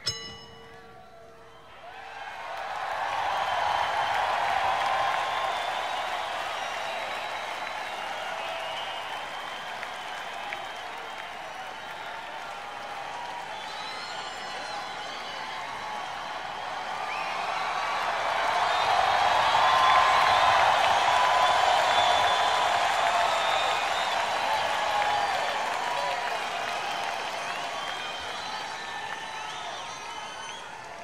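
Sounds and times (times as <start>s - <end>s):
crowd cheering and applauding: 0.0s - 31.0s
whoops: 1.0s - 31.0s.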